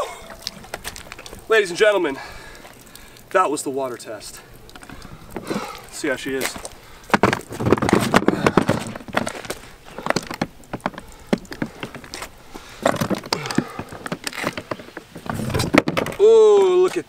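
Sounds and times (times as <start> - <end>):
water splashing and running off: 0.0 - 17.0
case knocking and scraping on stone: 6.4 - 16.2.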